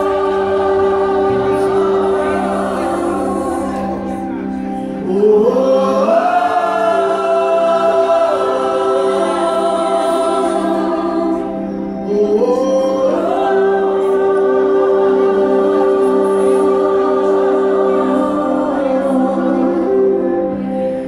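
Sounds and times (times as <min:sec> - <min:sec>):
gospel band playing: 0:00.0 - 0:21.0
voices singing held notes: 0:00.0 - 0:21.0.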